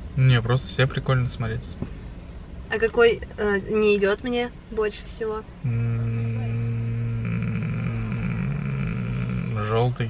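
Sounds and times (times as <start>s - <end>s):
man humming: 5.6s - 10.0s.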